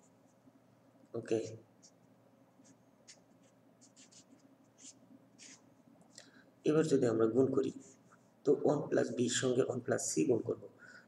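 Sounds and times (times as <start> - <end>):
felt-tip marker scratching on paper: 1.8 - 5.7.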